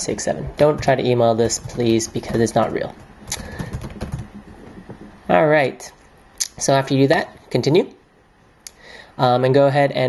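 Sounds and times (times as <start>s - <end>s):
computer keyboard keys clicking: 0.7s - 4.4s.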